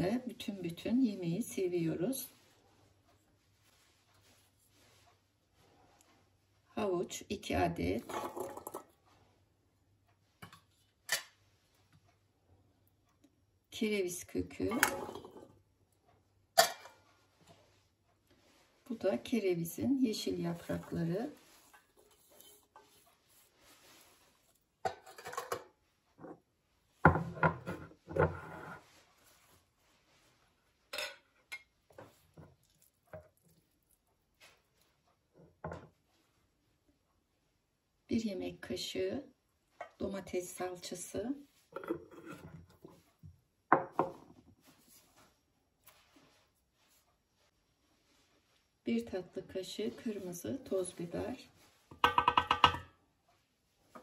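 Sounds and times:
wooden spoon scraping: 7.9 - 9.2, 14.5 - 15.6, 20.1 - 26.5, 27.2 - 36.2, 41.3 - 43.3
metal bowl and pot knocking: 51.9 - 52.9.

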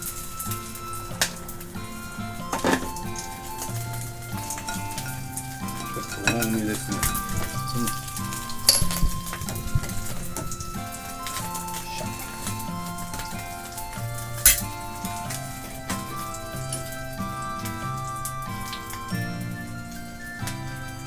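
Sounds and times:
slow background music: 0.0 - 21.0
utensils clinking on ceramic bowl: 4.4 - 9.4.

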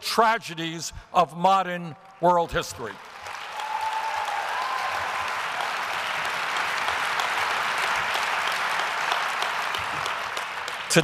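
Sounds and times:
audience applauding: 2.9 - 11.0.

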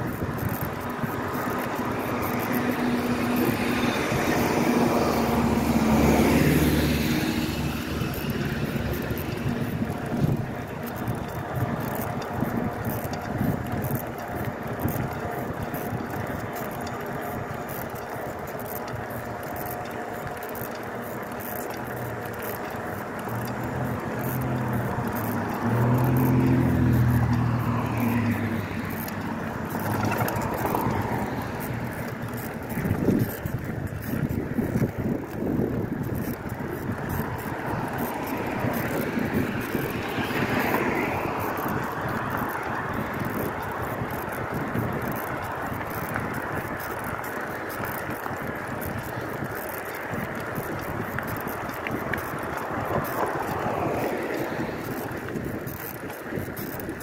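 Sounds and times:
bicycle rattling and knocks: 0.0 - 57.0
bicycle tyres rolling on pavement: 0.0 - 57.0
low engine hum: 0.0 - 57.0
wind: 0.0 - 57.0.

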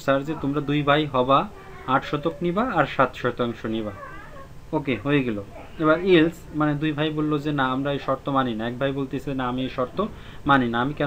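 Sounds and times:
man narrating: 0.0 - 4.1, 4.7 - 11.0.

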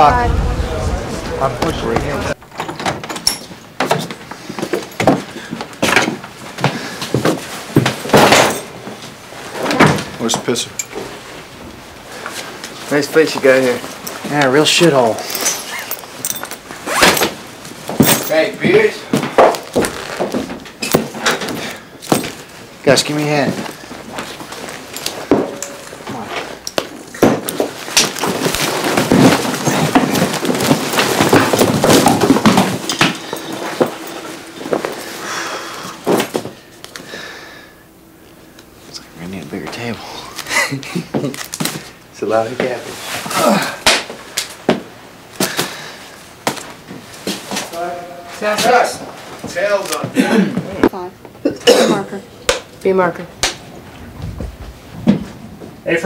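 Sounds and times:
people talking: 0.0 - 2.4, 38.9 - 41.1
objects knocking when set down: 27.2 - 35.0
bag rustling: 27.6 - 36.6.

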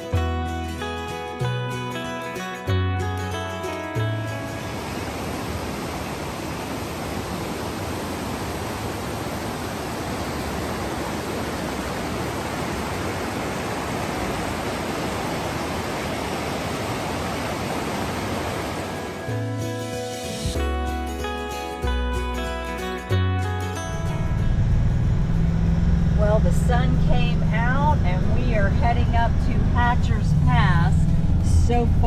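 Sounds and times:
acoustic guitar music: 0.0 - 5.1, 18.9 - 30.7
river rapids rushing over boulders: 4.4 - 19.3.

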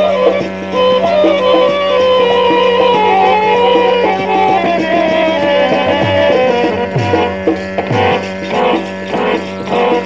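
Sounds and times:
low drone: 0.0 - 10.0
repeating melodic notes: 0.0 - 10.0.

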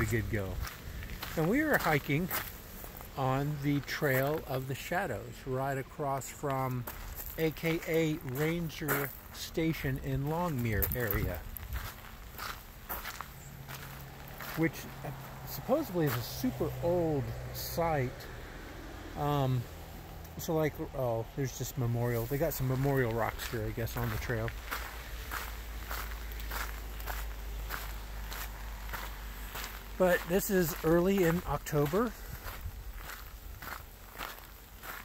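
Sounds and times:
footsteps crunching on gravel: 0.0 - 18.0, 18.9 - 35.0.

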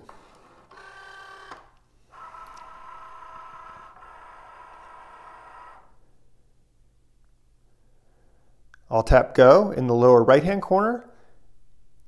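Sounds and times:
machine motor whine: 0.0 - 6.0.

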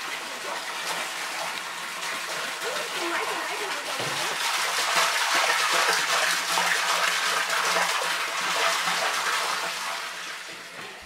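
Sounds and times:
water pouring from a jerrycan: 0.0 - 11.0
water splashing into a drum: 0.0 - 11.0.

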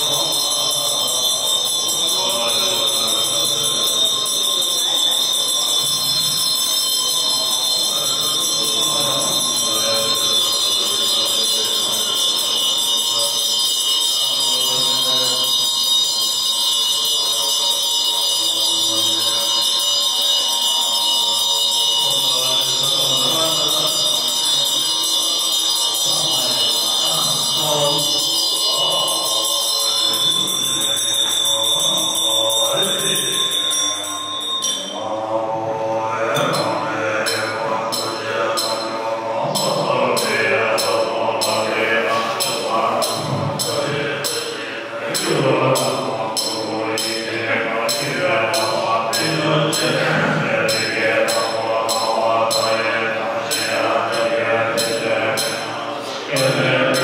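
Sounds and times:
high ringing tone: 0.0 - 57.0
mantra chanting with music: 0.0 - 57.0.

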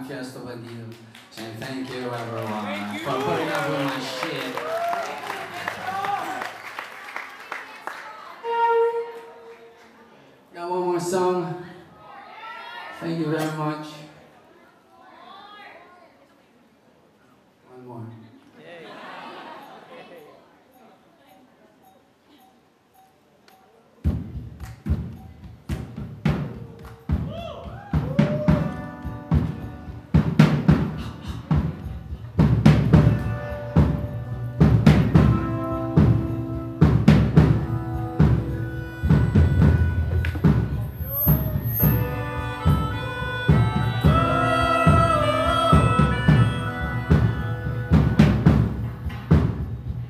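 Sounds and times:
live rock band playing: 28.0 - 50.0.

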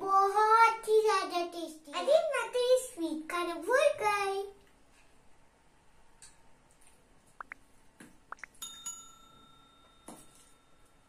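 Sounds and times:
small bell ringing: 8.6 - 11.0.

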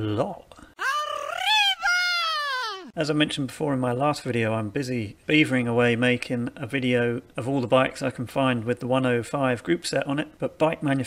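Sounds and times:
drawn-out vocal call: 0.8 - 2.9.

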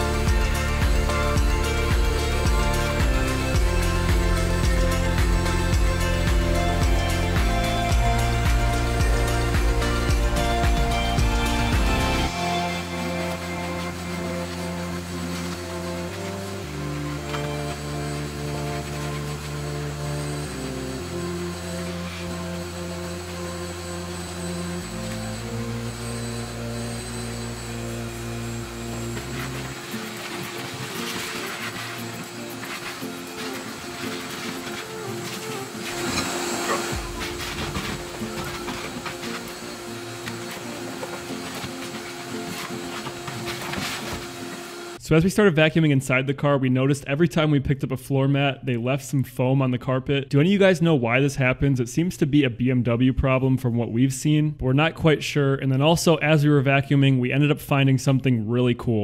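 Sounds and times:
shop vacuum running: 0.0 - 45.2
background music with bass notes: 0.0 - 47.7.

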